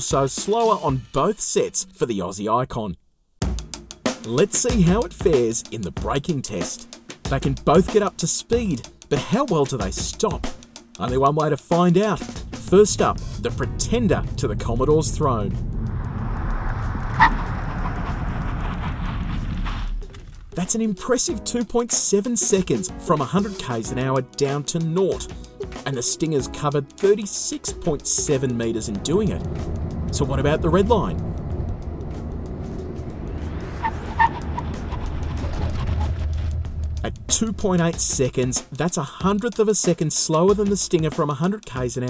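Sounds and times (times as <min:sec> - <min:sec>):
background music: 0:00.0 - 0:02.0, 0:03.4 - 0:16.6, 0:20.5 - 0:42.0
tyre and road noise: 0:12.2 - 0:21.0, 0:27.7 - 0:38.8
car engine low rumble: 0:12.3 - 0:20.6, 0:27.7 - 0:38.5
tyre squeal: 0:33.6 - 0:36.4.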